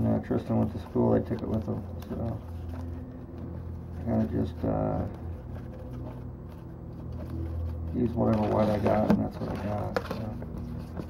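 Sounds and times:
low room hum: 0:00.0 - 0:11.0
paintbrush scraping and tapping: 0:00.2 - 0:11.0.

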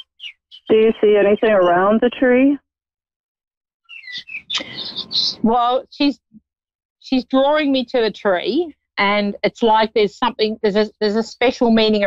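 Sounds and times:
birds chirping: 0:00.0 - 0:02.0, 0:03.9 - 0:05.5.

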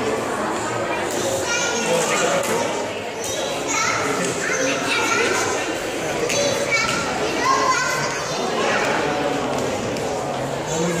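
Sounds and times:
children talking and calling out: 0:00.0 - 0:11.0
visitors chattering: 0:00.0 - 0:11.0.

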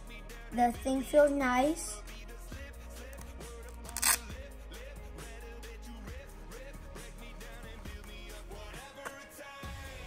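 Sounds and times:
background music: 0:00.0 - 0:10.0
hook-and-loop strap ripping: 0:03.1 - 0:04.3.

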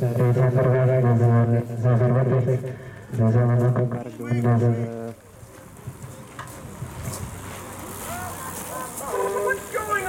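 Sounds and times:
bystanders chattering: 0:02.5 - 0:10.0
outdoor background hiss: 0:03.9 - 0:10.0.

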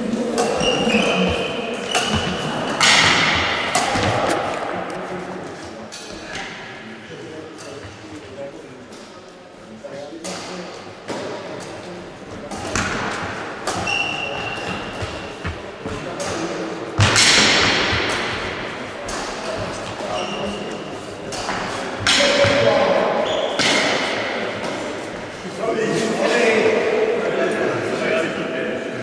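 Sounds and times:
badminton racket hitting shuttlecock: 0:00.4 - 0:04.7
high shoe squeaks: 0:00.5 - 0:02.7, 0:13.8 - 0:15.4, 0:20.0 - 0:20.8, 0:23.2 - 0:23.6.

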